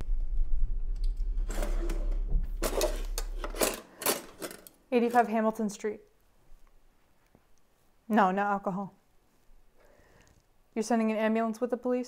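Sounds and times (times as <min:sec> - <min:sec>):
low steady hum: 0:00.0 - 0:06.4
cutlery clattering in a drawer: 0:01.5 - 0:05.4.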